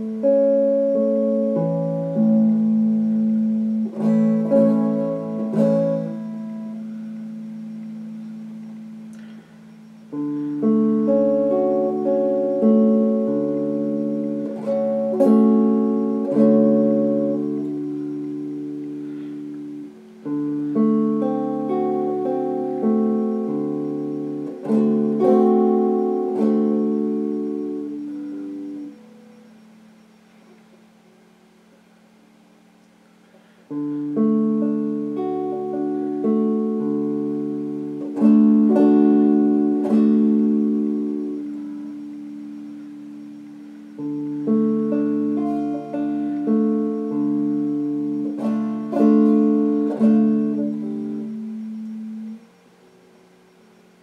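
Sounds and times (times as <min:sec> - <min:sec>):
clean electric guitar chords: 0:00.0 - 0:31.0, 0:33.4 - 0:54.0.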